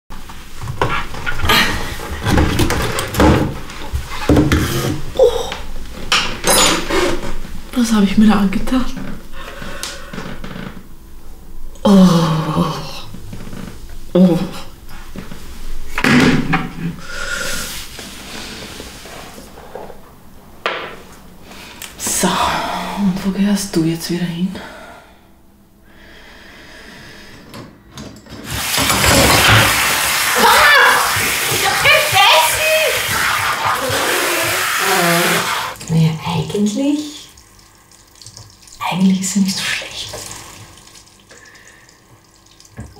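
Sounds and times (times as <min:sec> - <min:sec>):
water spraying from faucet: 0:28.5 - 0:42.9.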